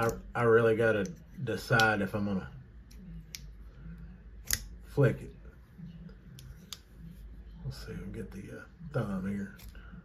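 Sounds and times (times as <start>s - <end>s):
metallic snap of knife blade: 4.4s - 4.7s.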